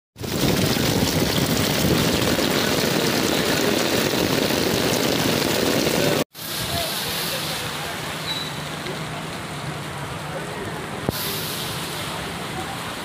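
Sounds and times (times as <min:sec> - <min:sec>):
heavy rain on pavement: 0:00.2 - 0:13.0.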